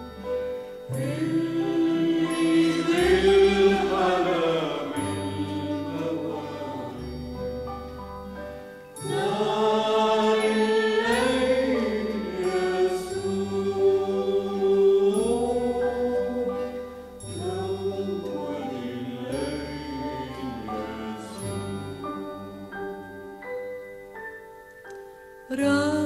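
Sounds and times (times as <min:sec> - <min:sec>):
sustained bass notes: 0:00.0 - 0:08.5
choir-like singing: 0:00.9 - 0:07.4, 0:09.0 - 0:23.1.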